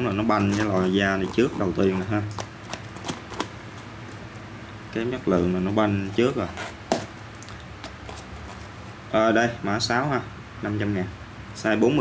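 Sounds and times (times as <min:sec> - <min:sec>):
rustling of shoe: 0:00.0 - 0:04.4, 0:05.7 - 0:07.2, 0:07.8 - 0:09.0.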